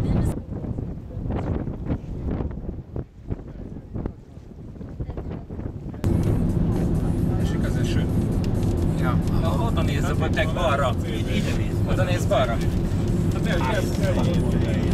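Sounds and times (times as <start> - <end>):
wind buffeting microphone: 0.0 - 14.9
car cabin road drone: 5.3 - 14.9.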